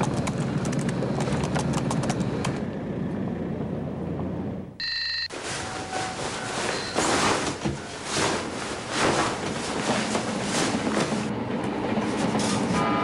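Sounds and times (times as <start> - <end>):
short electronic beep: 4.8 - 5.4.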